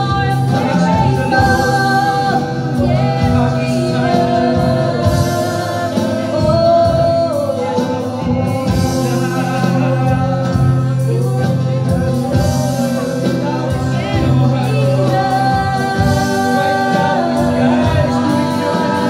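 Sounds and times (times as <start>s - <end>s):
acoustic guitar: 0.0s - 19.0s
electric guitar: 0.0s - 19.0s
keyboard: 0.0s - 19.0s
man singing: 0.0s - 19.0s
woman singing: 0.0s - 19.0s.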